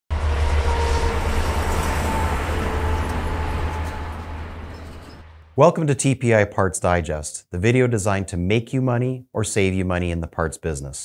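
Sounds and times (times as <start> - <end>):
heavy highway traffic rumble: 0.1 - 5.3.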